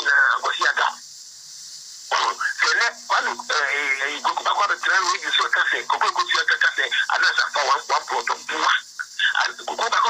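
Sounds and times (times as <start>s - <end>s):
person talking: 2.1s - 10.0s.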